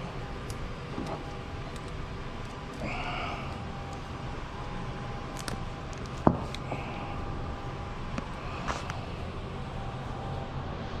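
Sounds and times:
repair shop background noise: 0:00.0 - 0:11.0.

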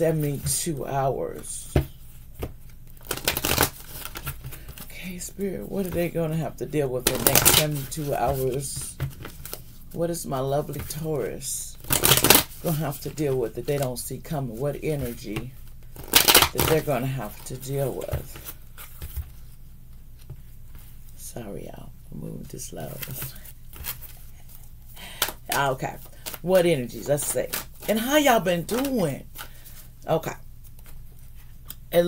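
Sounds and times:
low steady hum: 0:00.0 - 0:32.0
cards riffle shuffling: 0:01.7 - 0:06.1, 0:07.0 - 0:09.8, 0:11.8 - 0:13.2, 0:15.0 - 0:19.5, 0:22.9 - 0:29.9
handling deck of cards: 0:01.7 - 0:06.1, 0:07.0 - 0:10.0, 0:11.8 - 0:13.2, 0:15.0 - 0:21.0, 0:22.9 - 0:29.9
cards tapping and sliding: 0:11.9 - 0:12.6.

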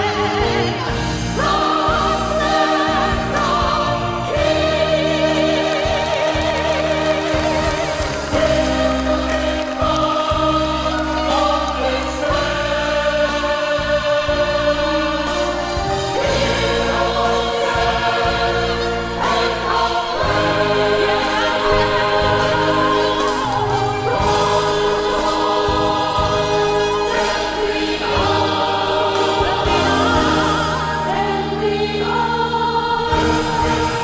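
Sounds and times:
choir singing: 0:00.0 - 0:34.0.

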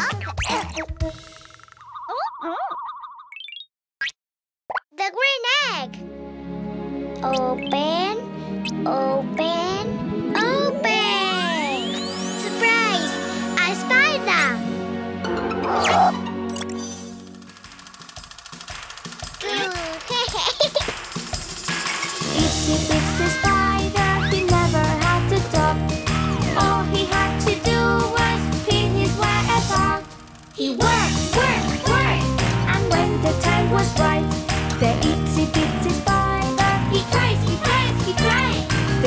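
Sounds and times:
squeaky cartoon voice sounds: 0:01.8 - 0:03.5, 0:07.2 - 0:09.5, 0:10.4 - 0:14.6, 0:15.6 - 0:17.2, 0:19.4 - 0:20.6, 0:23.2 - 0:24.6
children's background music: 0:05.0 - 0:17.5, 0:18.7 - 0:39.0
rising chirp: 0:11.3 - 0:13.6.

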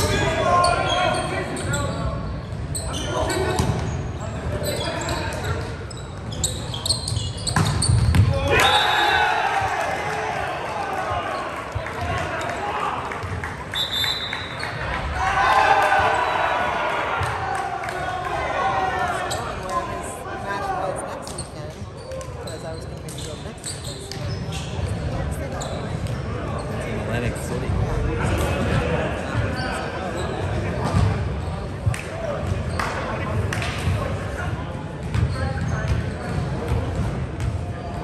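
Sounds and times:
balls bouncing on wooden court: 0:03.4 - 0:04.0, 0:05.3 - 0:08.4, 0:30.7 - 0:34.0, 0:35.0 - 0:38.0.

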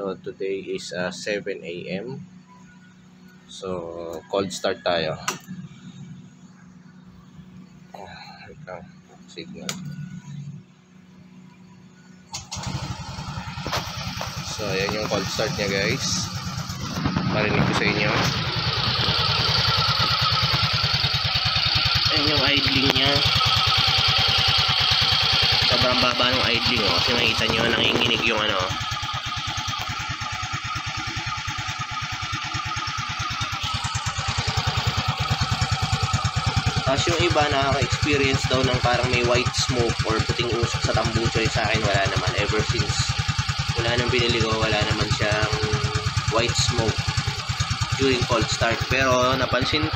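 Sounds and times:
scooter engine running: 0:00.8 - 0:49.9.

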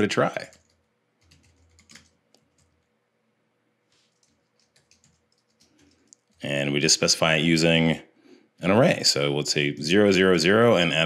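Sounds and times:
keyboard typing: 0:00.0 - 0:02.9, 0:03.9 - 0:06.7.

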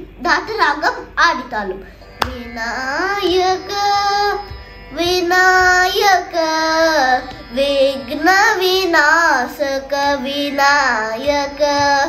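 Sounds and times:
boy singing: 0:00.2 - 0:12.0.

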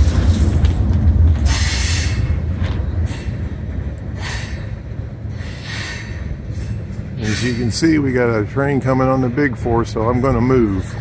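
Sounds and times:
freight train rumbling: 0:00.0 - 0:11.0.

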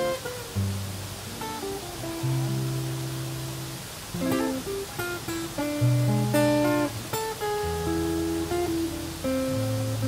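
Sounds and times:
acoustic guitar notes plucked: 0:00.0 - 0:10.0.

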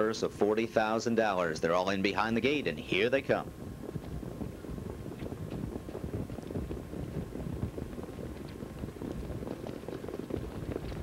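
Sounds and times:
hoofbeats rumbling: 0:00.0 - 0:11.0
wind on microphone: 0:01.2 - 0:11.0
sulky wheels: 0:02.9 - 0:11.0.

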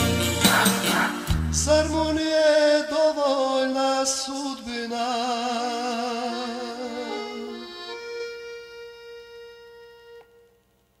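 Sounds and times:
accordion sustaining a note: 0:05.7 - 0:10.7.

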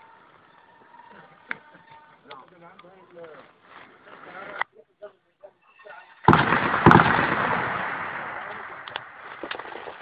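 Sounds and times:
loud shelling blast: 0:06.2 - 0:09.2
explosion rumble: 0:06.3 - 0:09.5
sharp crack: 0:06.3 - 0:10.0.

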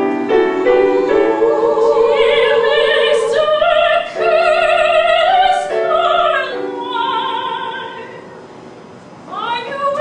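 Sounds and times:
opera singer singing: 0:00.7 - 0:08.3.

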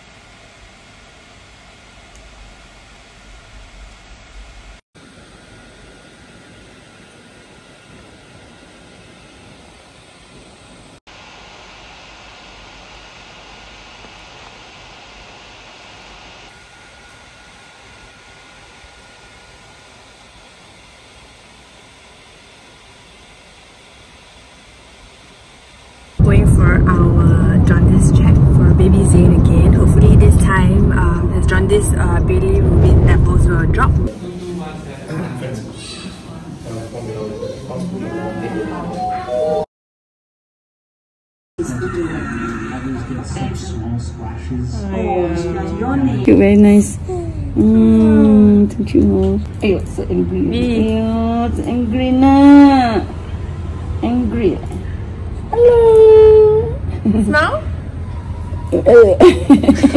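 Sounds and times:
room tone hiss: 0:00.0 - 0:26.4
car cabin rumble: 0:26.2 - 0:34.1
woman's voice: 0:26.2 - 0:34.1, 0:44.9 - 0:53.2, 0:54.0 - 0:54.9, 0:55.6 - 0:57.7, 0:58.7 - 0:59.9.

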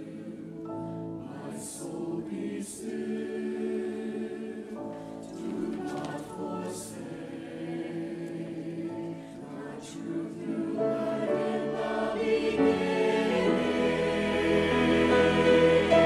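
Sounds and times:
choir singing a hymn: 0:00.0 - 0:16.0
violin accompaniment: 0:11.4 - 0:16.0.

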